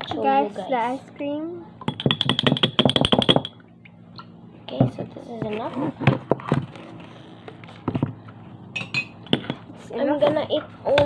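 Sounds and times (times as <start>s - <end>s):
spoon tapping and scraping tub: 1.8s - 3.6s.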